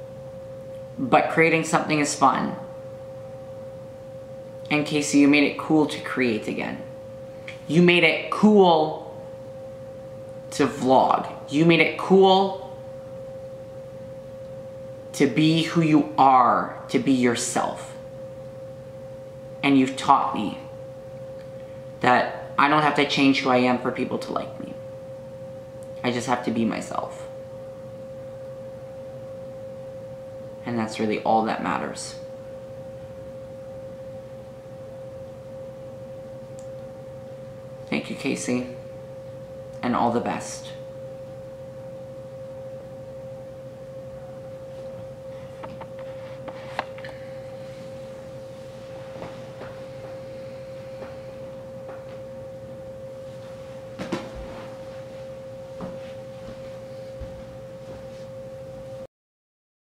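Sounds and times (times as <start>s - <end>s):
faint low hum: 0.0s - 59.1s
steady single-pitch whine: 0.0s - 59.1s.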